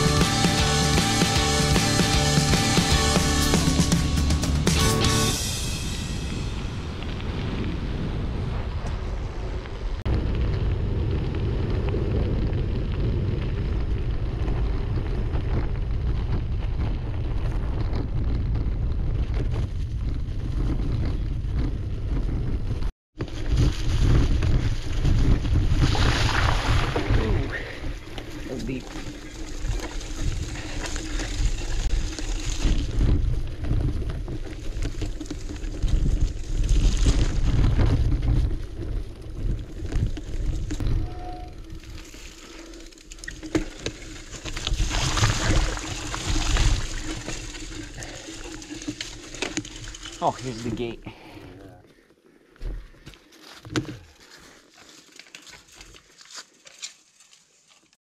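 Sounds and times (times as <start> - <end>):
wind buffeting microphone: 6.2 - 42.1.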